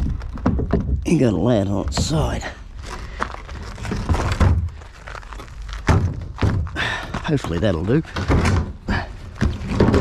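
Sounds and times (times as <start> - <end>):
plastic bin thunks on gravel: 3.8 - 4.8, 5.7 - 10.0.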